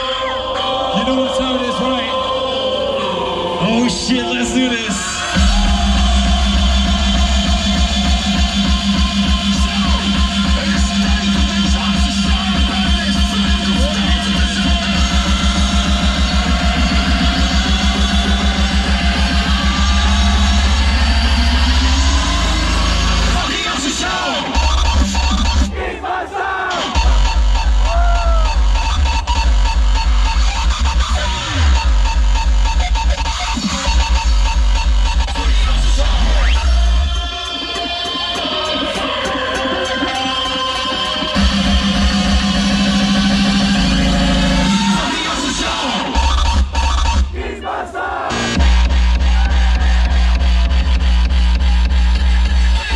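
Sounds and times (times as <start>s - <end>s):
hardstyle dance music over pa: 3.0s - 52.9s
heavy distorted kick drums: 5.3s - 25.8s, 26.8s - 37.4s, 41.4s - 47.4s, 48.4s - 52.9s
rising synth sweep: 41.4s - 45.0s.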